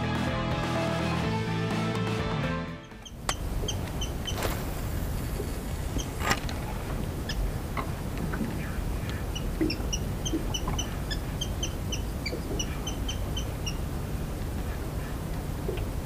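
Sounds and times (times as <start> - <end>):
small bird chirping: 9.3 - 13.8.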